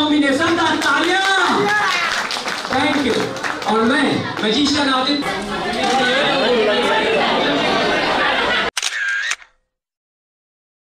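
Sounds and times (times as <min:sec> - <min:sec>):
room chatter: 0:00.1 - 0:09.4
camera shutter sound effect: 0:08.7 - 0:09.6.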